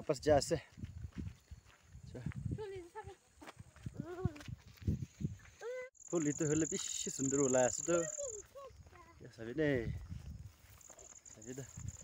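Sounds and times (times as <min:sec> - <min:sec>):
footsteps on dirt road: 0:00.0 - 0:06.0, 0:07.3 - 0:12.0.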